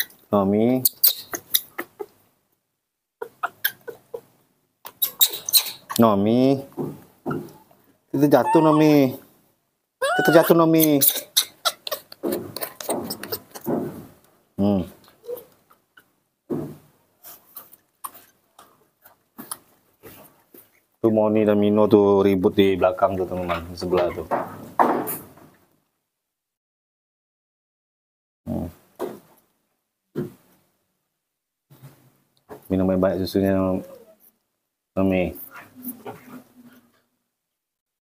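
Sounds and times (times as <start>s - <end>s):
baby monkey squeaking: 0.8s - 2.1s, 4.9s - 6.0s, 8.3s - 9.0s, 10.0s - 13.6s.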